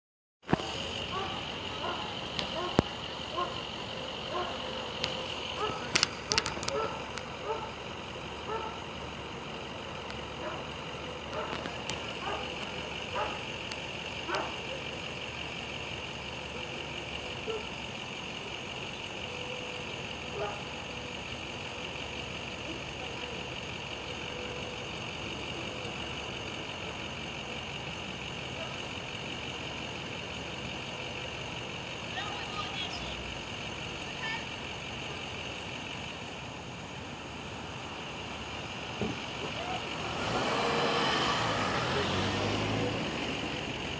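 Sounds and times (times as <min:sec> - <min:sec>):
outdoor ambience: 0:00.4 - 0:43.9
distant indistinct voices: 0:00.5 - 0:43.9.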